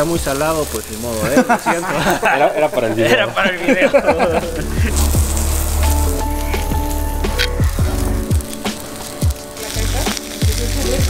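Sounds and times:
background music: 0.0 - 11.0
meat sizzling on a grill: 0.0 - 11.0.

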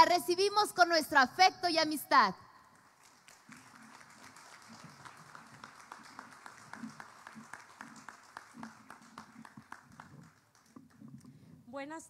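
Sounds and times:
faint audience applause: 2.7 - 11.0.

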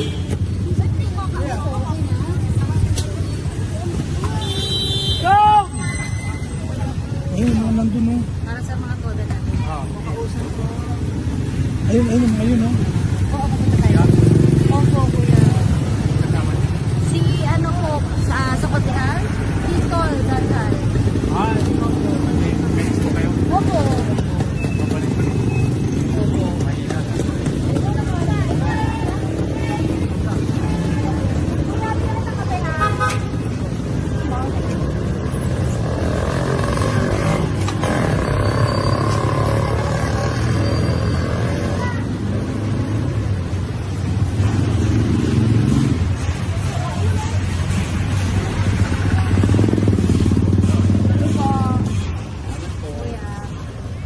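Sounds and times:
motorcycle engines rumbling: 0.0 - 54.0.

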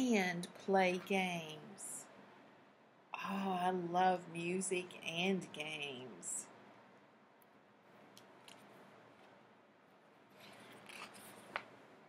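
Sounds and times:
paper pages rustling: 10.3 - 11.7.

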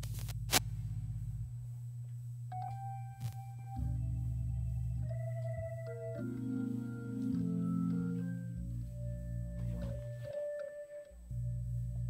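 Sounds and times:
higher sustained organ note: 2.5 - 12.0
organ holding low chord: 2.5 - 12.0.

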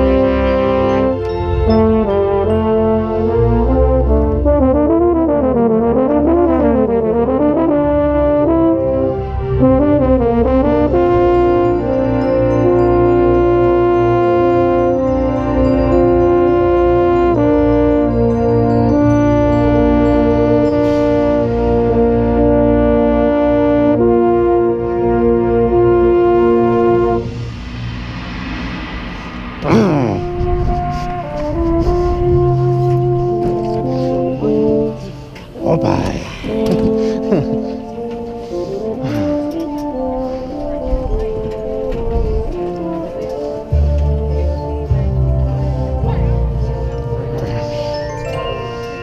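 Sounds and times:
baritone horn: 0.0 - 28.7, 29.6 - 49.0
brass line playing: 0.0 - 49.0.

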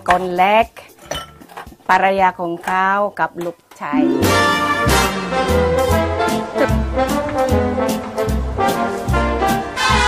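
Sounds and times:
woman talking: 1.9 - 4.2.

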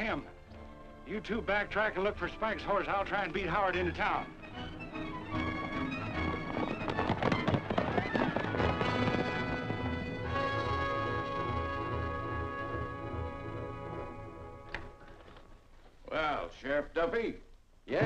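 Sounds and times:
dramatic orchestral music: 0.0 - 15.0
horse galloping hoofbeats: 2.7 - 15.3.

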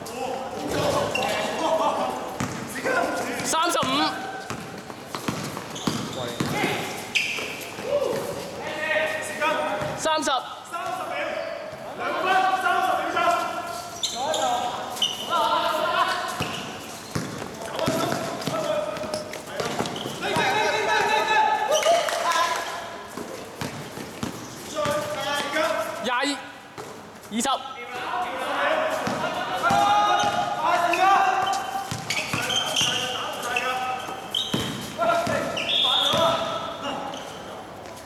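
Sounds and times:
players' voices: 0.0 - 37.9
basketball bouncing on court: 2.4 - 2.6, 3.4 - 6.8, 16.4 - 21.1, 23.6 - 25.5, 29.0 - 30.5, 31.9 - 33.0, 34.5 - 36.6.

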